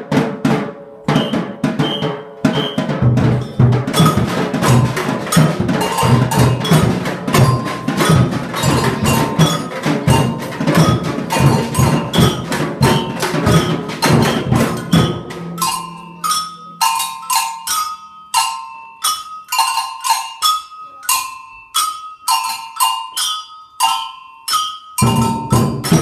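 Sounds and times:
big samba drums: 0.0s - 16.8s, 25.0s - 26.0s
hand percussion clinking: 1.1s - 26.0s.

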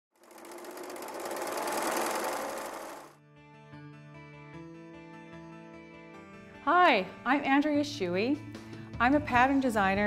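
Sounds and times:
sewing machine stitching: 0.1s - 3.1s.

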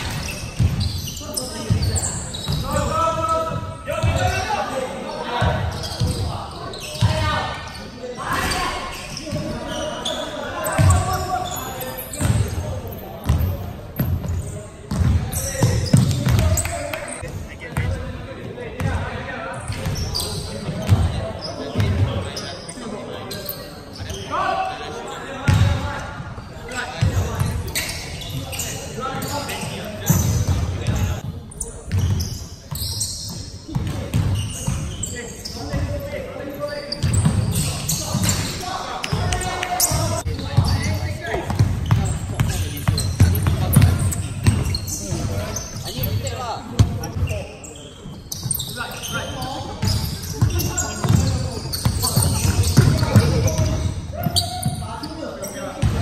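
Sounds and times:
basketball bouncing on hardwood floor: 14.9s - 15.2s.

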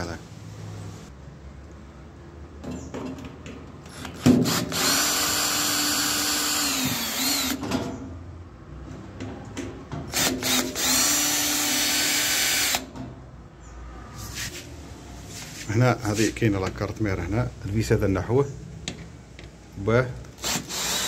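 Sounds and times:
cordless drill motor running: 4.0s - 7.6s, 10.2s - 12.8s, 20.4s - 21.0s.

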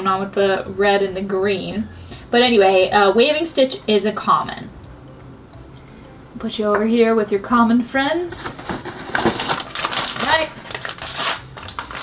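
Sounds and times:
foil bag crinkling: 8.4s - 12.0s.

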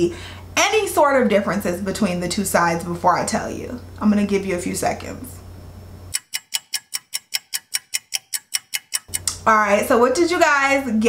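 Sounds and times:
clock ticking: 6.1s - 9.4s.

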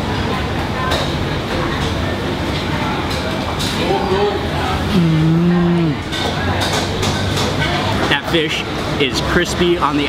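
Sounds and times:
man humming mmm while chewing: 4.8s - 6.1s.

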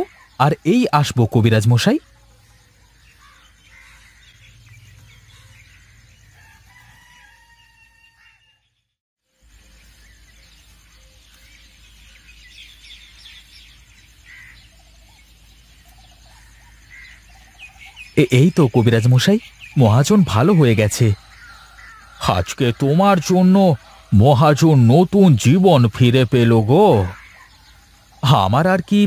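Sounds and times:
faint birds chirping: 0.0s - 29.0s
faint rooster crowing: 5.2s - 8.8s.

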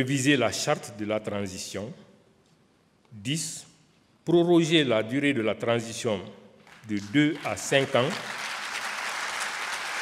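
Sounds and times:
audience applauding: 6.7s - 10.0s.

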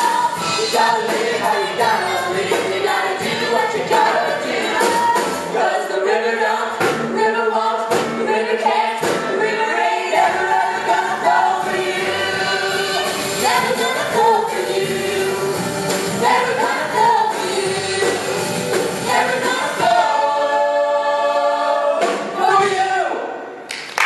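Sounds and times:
ensemble singing musical number: 0.0s - 23.6s.

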